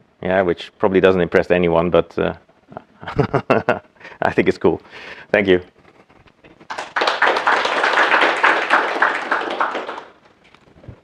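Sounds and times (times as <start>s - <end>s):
audience clapping: 6.5s - 10.2s.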